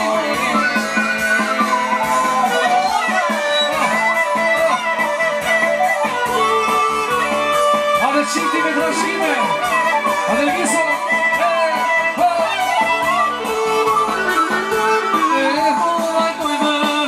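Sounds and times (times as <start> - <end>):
folk dance music over sound system: 0.0 - 17.0.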